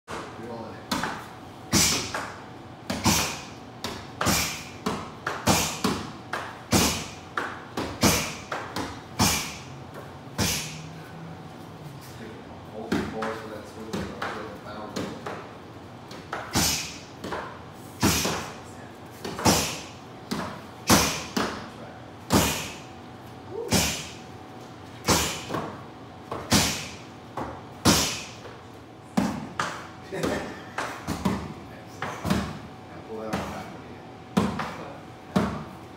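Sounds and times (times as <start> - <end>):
punches hitting pads: 0.9 - 9.7, 10.4 - 10.8, 16.1 - 18.6, 19.2 - 21.7, 22.3 - 22.8, 23.7 - 24.2, 25.0 - 28.4, 29.2 - 32.6, 34.3 - 35.7.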